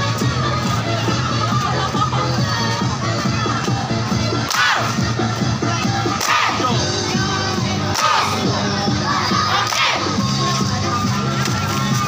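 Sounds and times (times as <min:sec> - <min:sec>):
large crowd noise: 0:00.0 - 0:12.0.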